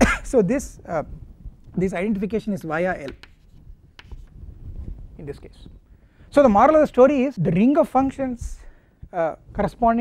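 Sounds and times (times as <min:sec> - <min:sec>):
chalk scratching on blackboard: 0:02.6 - 0:04.4
chalk tapping on blackboard: 0:02.6 - 0:04.4.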